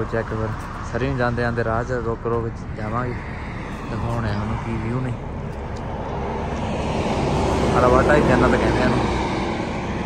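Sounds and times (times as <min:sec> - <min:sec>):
road and wind noise driving: 0:00.0 - 0:10.0.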